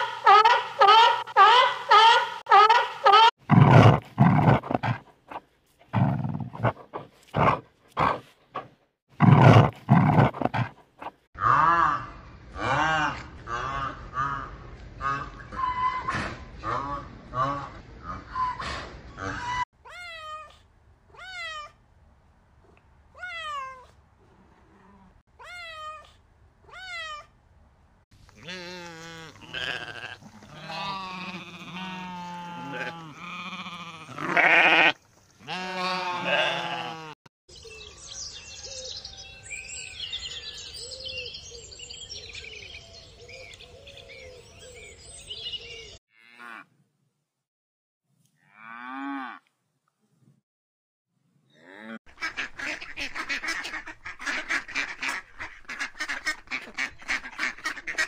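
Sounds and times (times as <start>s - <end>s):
goat and sheep bleating: 28.4s - 37.2s.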